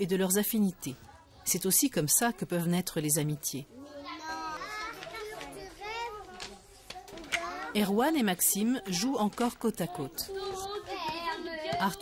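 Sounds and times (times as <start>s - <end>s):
young children talking: 3.7s - 8.0s, 9.8s - 12.0s.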